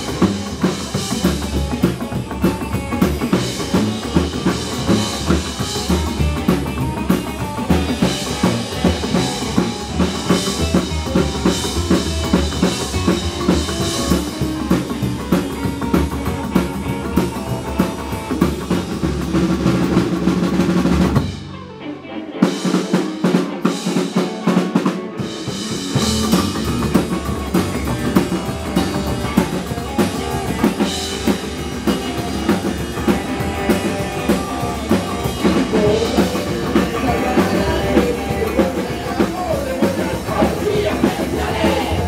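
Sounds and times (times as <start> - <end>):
drum kit playing: 0.0 - 21.7, 22.3 - 42.0
live rock band playing: 0.0 - 42.0.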